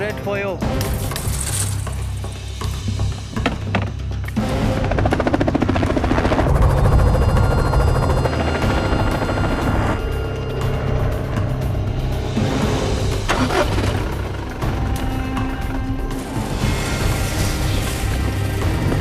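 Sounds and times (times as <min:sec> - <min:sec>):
background music: 0:00.0 - 0:19.0
helicopter rotor chopping: 0:04.4 - 0:10.1.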